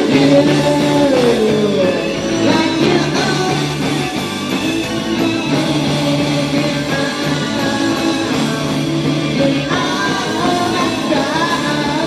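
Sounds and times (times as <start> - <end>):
electric bass: 0.0 - 12.0
electric guitar: 0.0 - 12.0
rock band playing live: 0.0 - 12.0.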